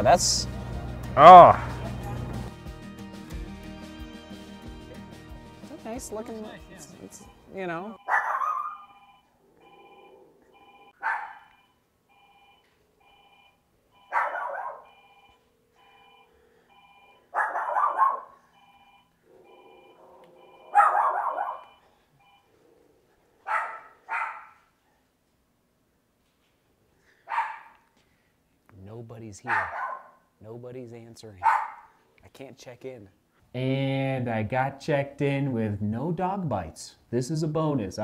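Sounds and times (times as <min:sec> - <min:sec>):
faint pulsing electronic tone: 0:06.8 - 0:17.3, 0:18.5 - 0:22.6
small dog yapping: 0:08.1 - 0:08.9, 0:11.0 - 0:11.5, 0:14.1 - 0:14.8, 0:17.4 - 0:18.4, 0:19.4 - 0:21.7, 0:23.5 - 0:24.6, 0:27.3 - 0:27.9, 0:29.5 - 0:30.2, 0:31.4 - 0:31.9.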